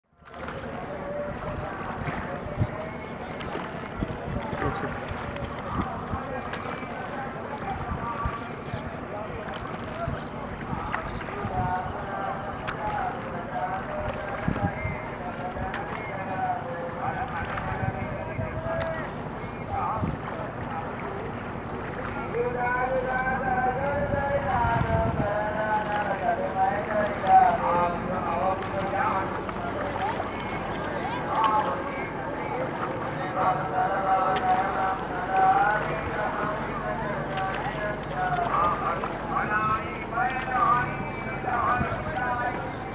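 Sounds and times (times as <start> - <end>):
oars knocking against boat: 0.2 - 16.4, 17.1 - 23.2, 24.3 - 31.8
water splashing: 0.2 - 42.9
wind on microphone: 0.3 - 27.8, 34.1 - 42.9
indistinct voices: 0.4 - 42.9.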